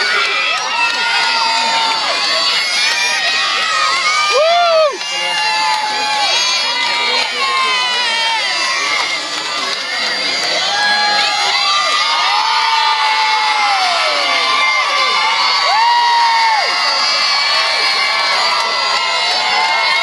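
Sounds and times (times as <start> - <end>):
children cheering and screaming: 0.0 - 20.0
long drawn-out shouts: 0.0 - 20.0.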